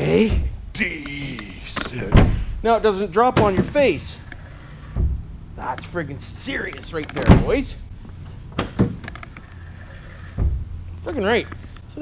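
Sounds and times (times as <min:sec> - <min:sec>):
steady low hum: 0:00.0 - 0:12.0
dull low thump: 0:02.1 - 0:02.6, 0:04.9 - 0:05.5, 0:10.3 - 0:11.0.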